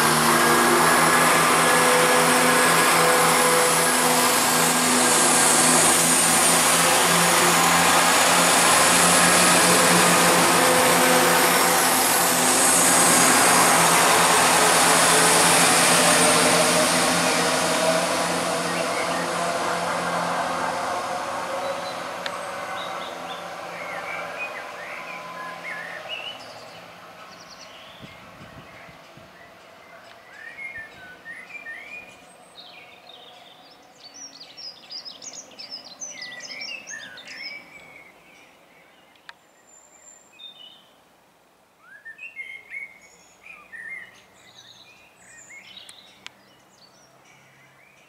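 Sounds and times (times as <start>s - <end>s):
diesel train engine and wheels: 0.0s - 28.4s.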